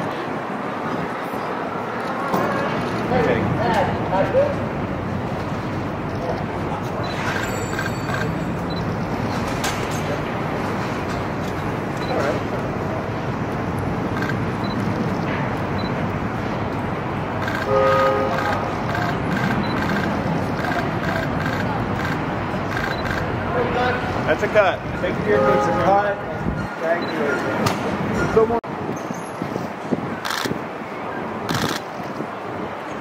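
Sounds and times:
traffic: 0.0 - 33.0
indistinct voices: 17.4 - 28.6.

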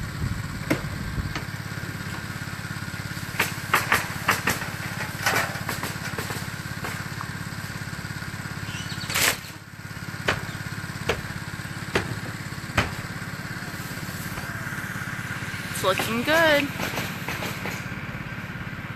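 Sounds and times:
small engine running: 0.0 - 18.9
hammer nailing shingles: 3.3 - 7.0, 10.2 - 13.1.

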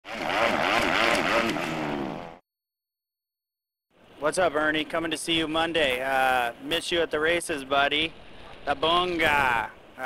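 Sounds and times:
motorcycle engine revving: 0.0 - 2.4.

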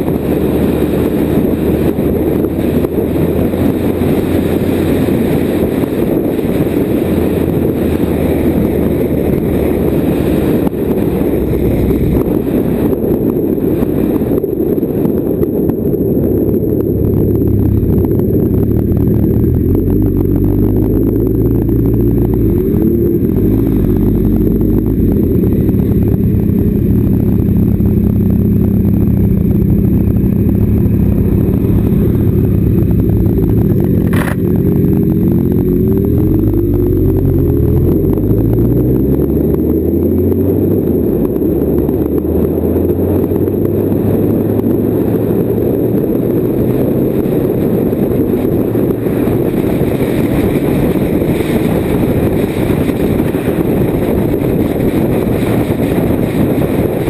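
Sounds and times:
motorcycle engine: 0.0 - 57.0
sharp click: 34.1 - 34.5.

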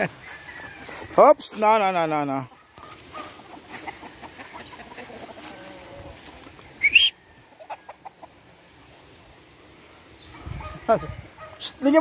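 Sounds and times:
roosters clucking: 0.0 - 12.0.

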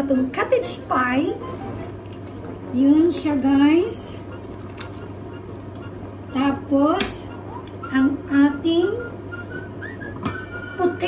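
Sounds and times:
steady low hum: 0.0 - 11.0
ladle stirring: 4.2 - 6.3.

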